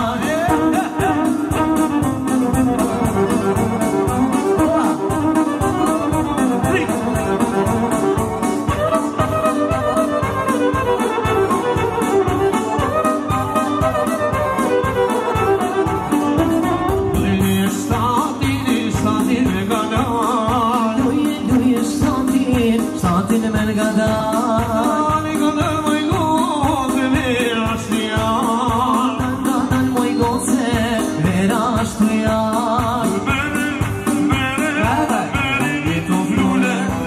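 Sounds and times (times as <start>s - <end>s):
violin: 0.0s - 22.2s
electronic keyboard: 0.0s - 37.0s
quick drum beat: 0.0s - 37.0s.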